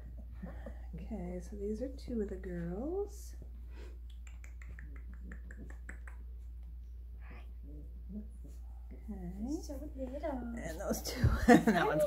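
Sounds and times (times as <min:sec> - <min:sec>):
mouth clicking: 0:04.0 - 0:06.4.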